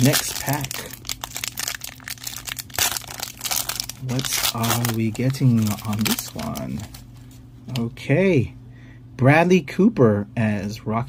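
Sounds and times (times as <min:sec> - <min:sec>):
foil wrapper crinkling and tearing: 0:00.0 - 0:07.9.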